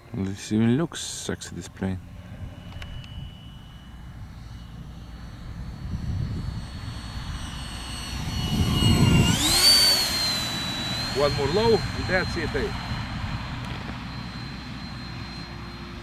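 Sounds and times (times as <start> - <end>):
electric ducted fan whining: 0.0 - 16.0.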